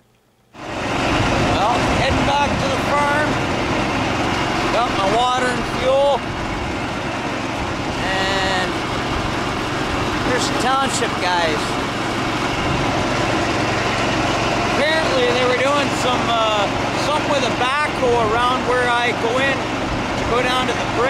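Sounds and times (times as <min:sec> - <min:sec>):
vehicle on gravel road: 0:00.6 - 0:21.0.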